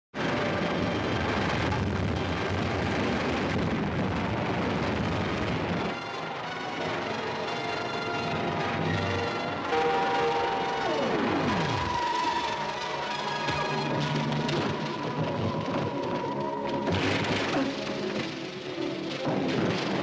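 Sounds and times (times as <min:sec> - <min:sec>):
dramatic music with held notes: 0:00.2 - 0:20.0
rumbling roar of crashing destruction: 0:00.2 - 0:20.0
tone falling in pitch: 0:09.7 - 0:13.8.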